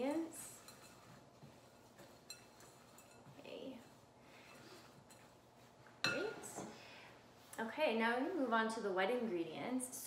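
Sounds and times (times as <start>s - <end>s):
spoon stirring dry mix in bowl: 0.0s - 6.7s.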